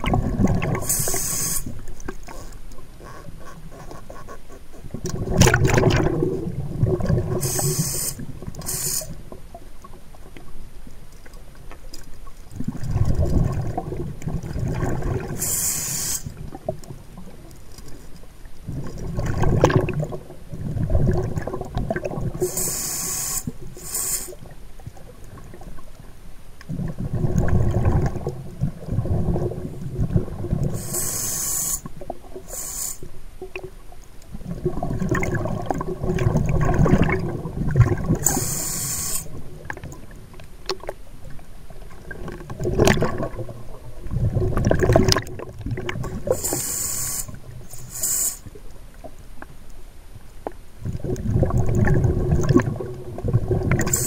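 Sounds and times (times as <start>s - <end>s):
exhaled air bubbling underwater: 0.0s - 10.7s, 11.4s - 17.5s, 18.6s - 49.2s, 50.5s - 54.0s
regulator hiss on inhale: 0.8s - 1.9s, 7.4s - 9.2s, 15.4s - 16.4s, 22.4s - 24.5s, 30.7s - 33.2s, 38.2s - 39.4s, 46.2s - 48.6s.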